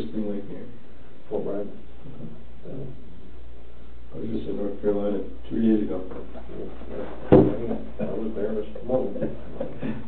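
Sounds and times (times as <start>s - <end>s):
sharp knock: 7.2s - 7.9s.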